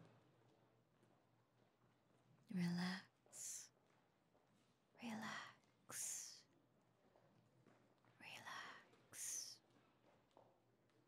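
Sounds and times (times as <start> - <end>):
woman whispering: 2.5 - 3.7, 5.0 - 6.5, 8.2 - 9.6.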